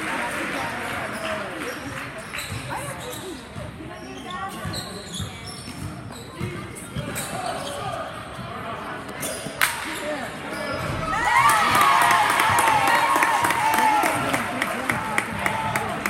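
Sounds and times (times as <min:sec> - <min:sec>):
spectators chatting: 0:00.0 - 0:16.0
sneaker squeaks: 0:01.1 - 0:11.2.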